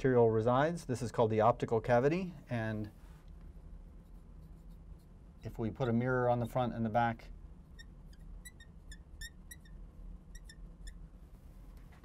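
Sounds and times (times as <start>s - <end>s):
marker squeaking on glass: 4.0s - 6.7s, 7.6s - 11.1s.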